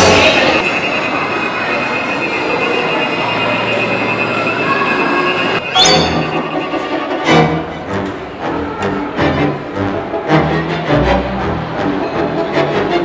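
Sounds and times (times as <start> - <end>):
steady high-pitched squeal: 0.2 - 7.2.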